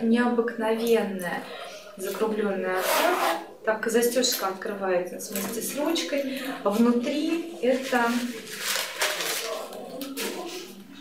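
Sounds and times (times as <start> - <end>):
fabric bag rustling: 6.7 - 10.6.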